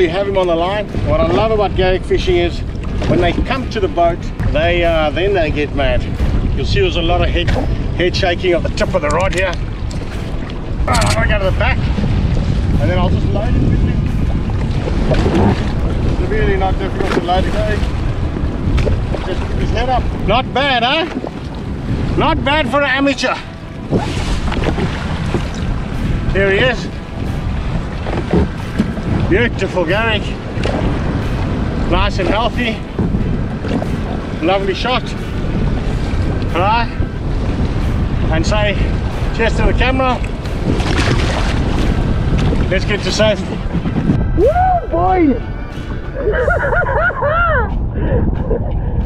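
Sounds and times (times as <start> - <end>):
water splashes: 0.0 - 46.7
sea wash: 0.0 - 49.0
wind rumbling on microphone: 0.0 - 49.0
man laughing: 46.0 - 48.7.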